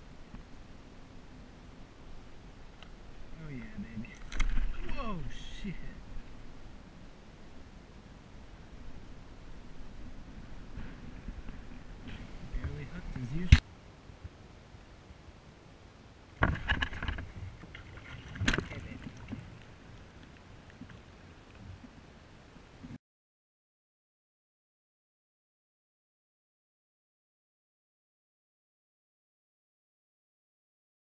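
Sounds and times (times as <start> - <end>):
water sounds: 0.0 - 15.4, 16.0 - 23.0
man exclaiming excitedly: 4.8 - 5.9
water splashing against kayak: 16.4 - 22.1.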